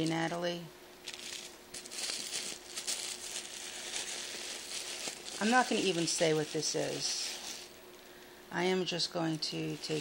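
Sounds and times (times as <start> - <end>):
tissue paper rustling: 1.0 - 7.7, 9.4 - 10.0.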